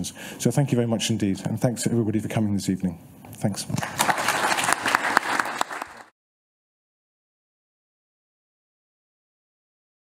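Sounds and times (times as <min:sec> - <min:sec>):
audience applauding: 0:03.8 - 0:06.2.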